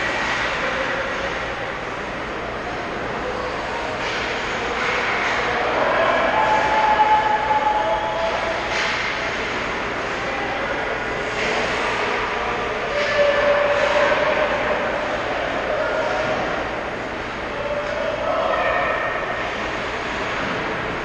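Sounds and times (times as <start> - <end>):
distant shouts: 5.4 - 8.7, 17.5 - 19.5.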